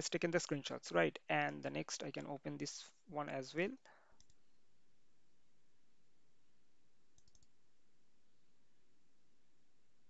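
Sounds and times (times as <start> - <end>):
computer mouse clicks: 4.2 - 4.4, 7.1 - 7.6.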